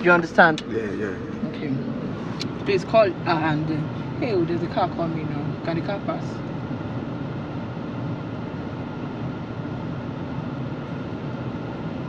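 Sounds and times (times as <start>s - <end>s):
car cabin hum: 0.0s - 12.0s.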